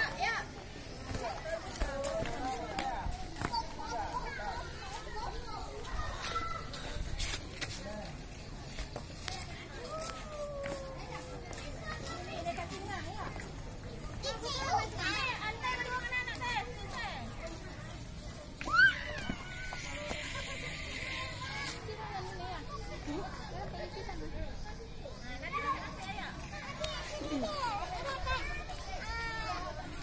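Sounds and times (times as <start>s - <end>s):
young children calling and chattering: 0.0s - 30.0s.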